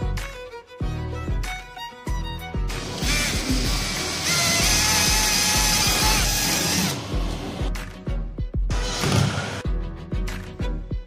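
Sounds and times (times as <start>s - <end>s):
violin music: 0.0s - 5.4s
cordless drill boring wood: 2.7s - 7.0s.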